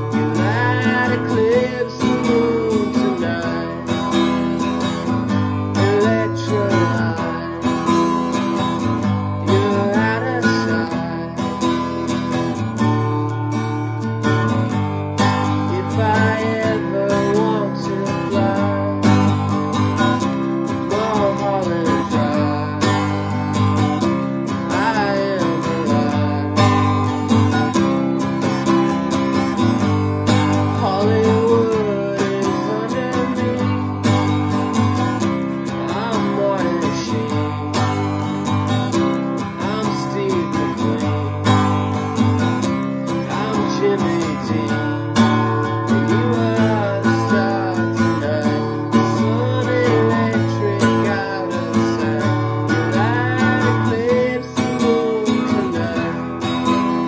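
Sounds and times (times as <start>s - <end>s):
acoustic guitar strumming: 0.0s - 57.0s
man singing: 0.0s - 57.0s.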